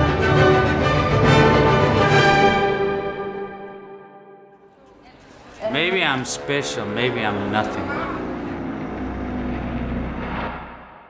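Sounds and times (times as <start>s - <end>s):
deep low rumbling drone: 5.3s - 11.0s.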